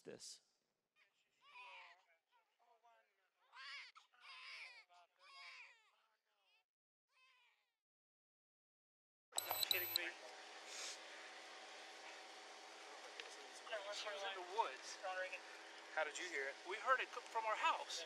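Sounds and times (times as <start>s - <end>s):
high tones: 9.4s - 10.1s
person speaking: 9.4s - 10.1s
outdoor hiss: 9.7s - 18.0s.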